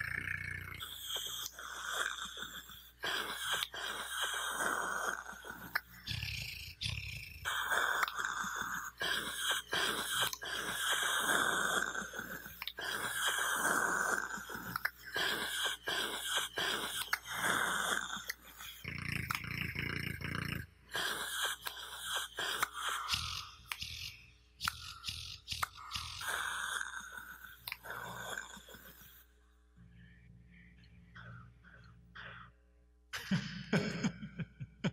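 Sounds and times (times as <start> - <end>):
tongue clicking and smacking: 0.0 - 29.1
hissing rasping breaths: 0.0 - 32.9.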